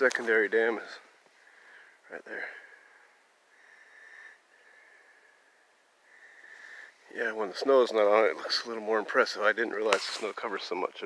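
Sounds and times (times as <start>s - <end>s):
soft hissy breathing: 0.9s - 9.2s.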